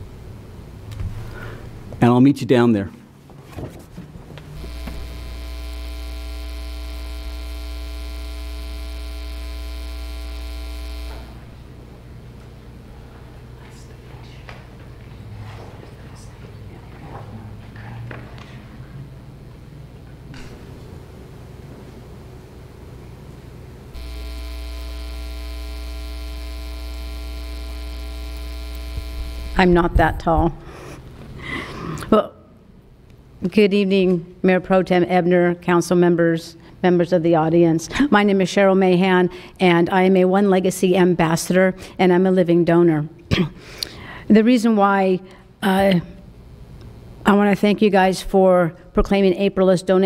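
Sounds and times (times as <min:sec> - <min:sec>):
electrical mains hum: 0:00.0 - 0:50.0.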